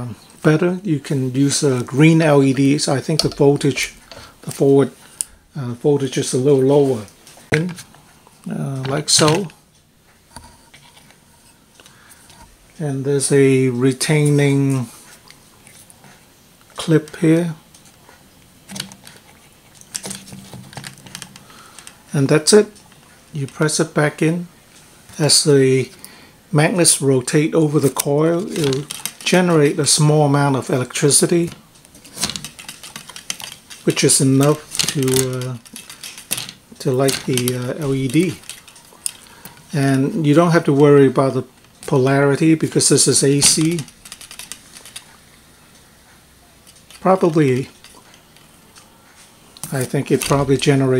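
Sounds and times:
faint room noise: 0:00.0 - 0:50.9
plastic pinwheel clicking and rattling: 0:19.8 - 0:22.0, 0:28.4 - 0:29.5, 0:31.4 - 0:39.4, 0:42.9 - 0:45.1.

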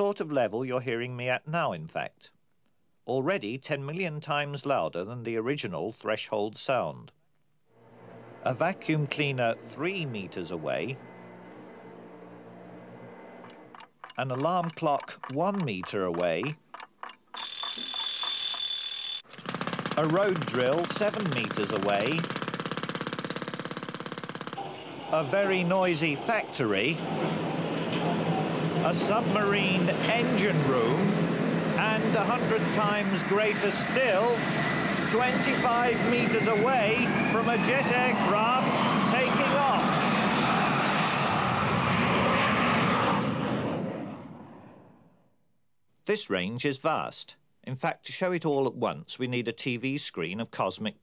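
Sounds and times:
jet airliner taking off: 0:07.8 - 0:13.7, 0:24.6 - 0:45.2
pneumatic road drill hammering: 0:15.0 - 0:24.8
alarm clock ringing: 0:17.4 - 0:22.5.

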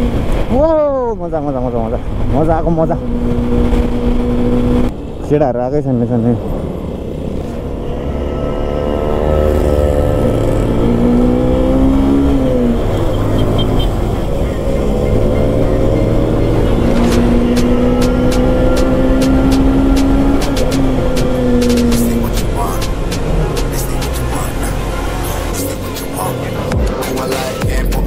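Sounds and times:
motorcycle engine accelerating: 0:00.0 - 0:27.8.

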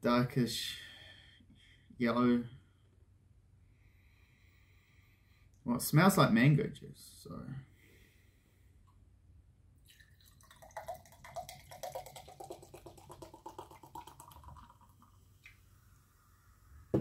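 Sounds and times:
drink pouring into glass: 0:09.8 - 0:15.6.

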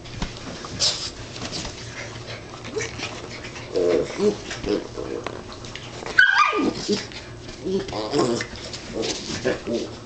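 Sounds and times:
dog yipping: 0:06.1 - 0:07.0.

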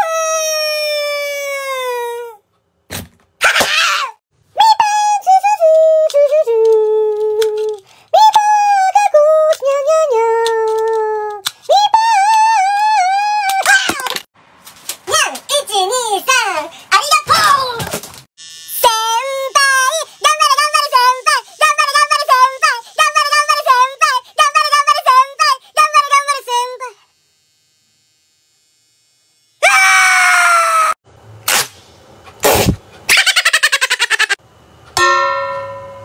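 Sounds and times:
high scream: 0:29.6 - 0:31.0
man laughing: 0:33.1 - 0:34.4.

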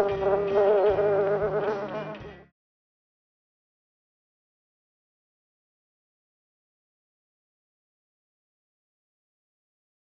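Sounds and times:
buzzing bee drone: 0:00.0 - 0:02.2.

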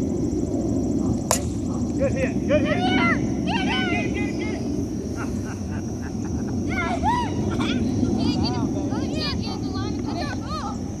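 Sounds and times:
steady high drone: 0:00.0 - 0:11.0
steady low rumble: 0:00.0 - 0:11.0.

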